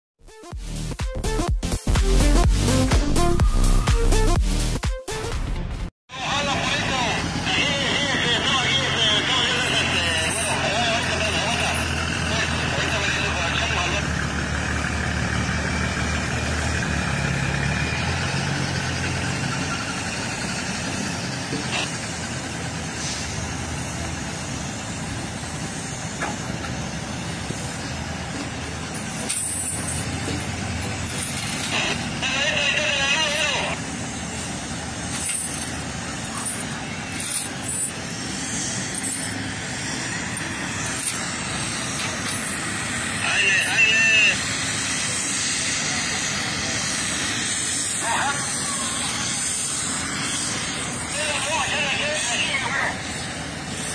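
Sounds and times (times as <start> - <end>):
mill machinery din: 6.1 - 53.9
truck diesel engine running: 6.1 - 53.9.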